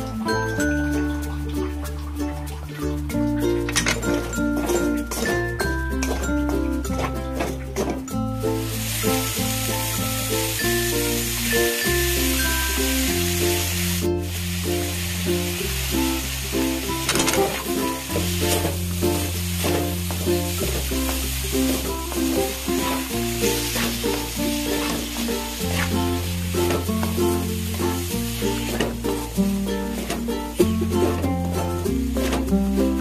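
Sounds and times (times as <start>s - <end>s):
background music: 0.0s - 33.0s
food sizzling in oil: 0.0s - 33.0s.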